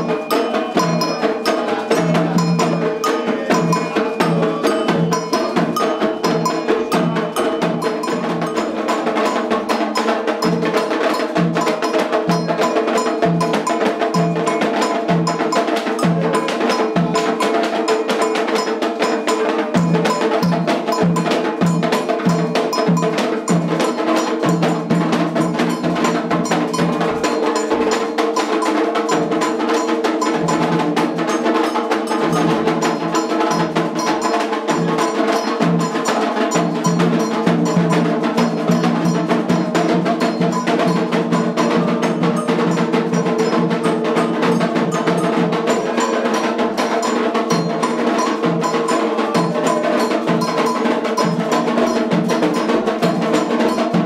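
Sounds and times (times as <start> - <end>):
metal bells struck rapidly: 0.0 - 54.0
deep drum beat: 19.7 - 54.0.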